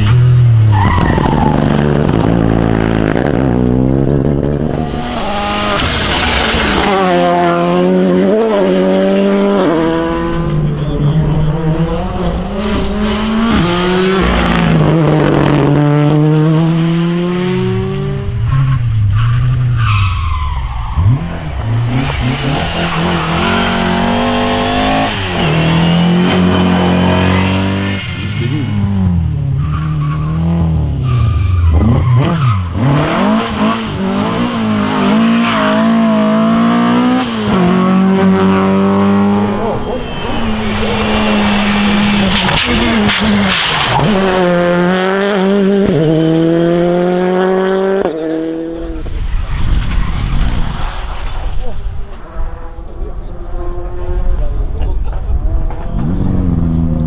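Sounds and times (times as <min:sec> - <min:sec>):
rally cars passing at speed: 0:00.0 - 0:57.0.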